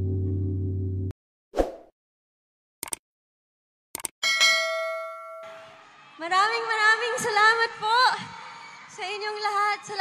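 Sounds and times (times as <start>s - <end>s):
bell ding ringing: 4.2s - 5.7s.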